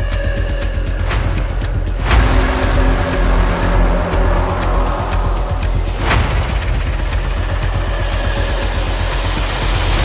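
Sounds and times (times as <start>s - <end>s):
loud low rumble with hiss: 1.5s - 10.0s
sharp hit: 2.0s - 7.8s.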